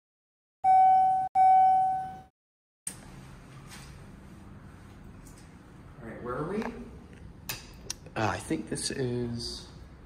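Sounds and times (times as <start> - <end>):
elevator chime dings: 0.6 - 2.3.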